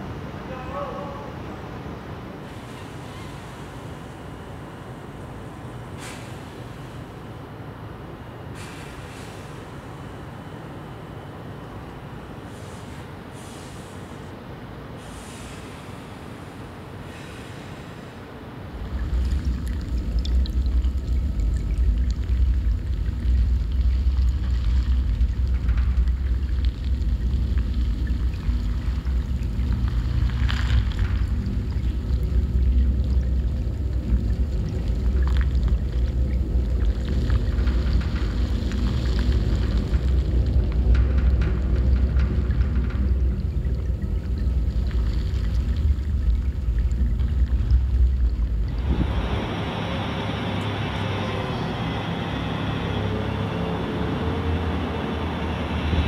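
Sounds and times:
hiss: 6.0s - 7.1s, 8.6s - 9.9s, 12.5s - 14.3s, 15.0s - 18.2s
deep rumble: 18.7s - 56.0s
ice cracking and popping: 23.8s - 32.6s.

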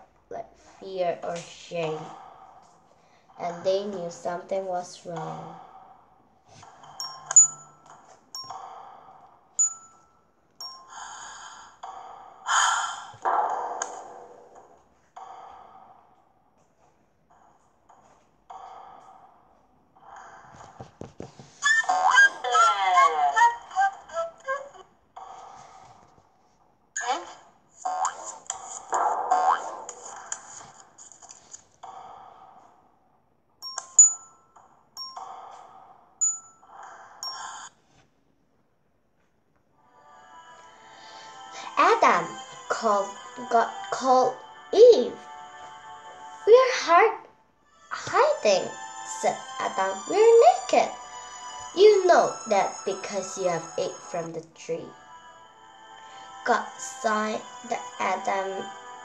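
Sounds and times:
high bell-like pings: 6.9s - 8.6s, 9.6s - 11.3s, 33.6s - 35.4s, 36.2s - 37.7s
bright chime ping: 7.0s - 8.6s
breathy sighing sounds: 10.6s - 13.2s.

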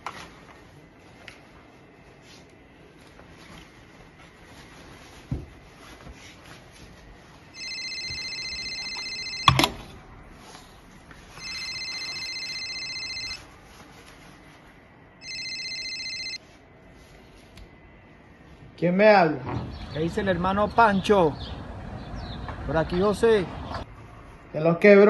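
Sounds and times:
mobile phone ringtone: 7.5s - 9.8s, 11.4s - 13.5s, 15.2s - 16.4s.

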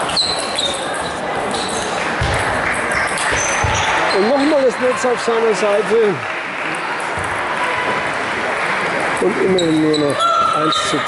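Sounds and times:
blurred voices in sports hall: 0.0s - 11.0s.

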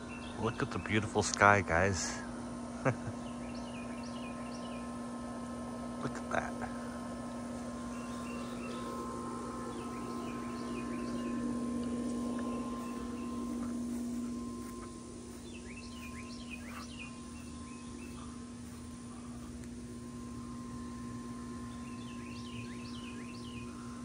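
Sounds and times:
songbirds chirping: 0.0s - 24.0s
steady low hum: 0.0s - 24.0s.

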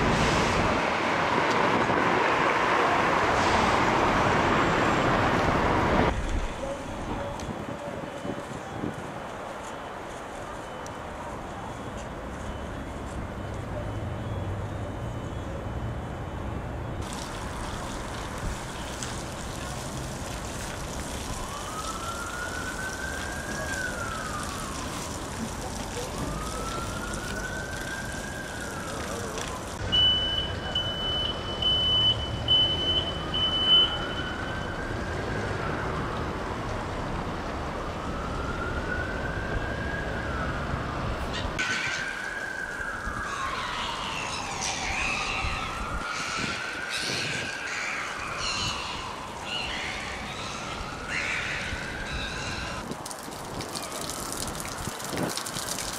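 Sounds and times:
emergency siren wailing: 10.6s - 52.9s.

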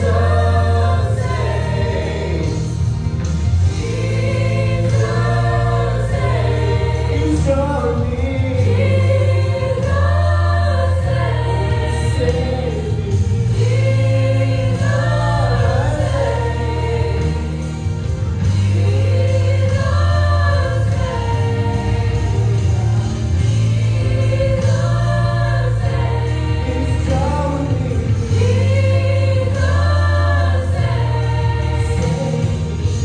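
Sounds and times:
gospel vocal quartet singing: 0.0s - 33.0s
low bass notes: 0.0s - 33.0s.

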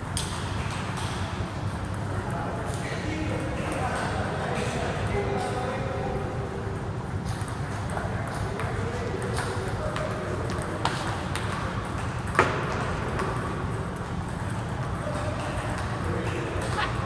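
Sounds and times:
low background noise: 0.0s - 17.0s.

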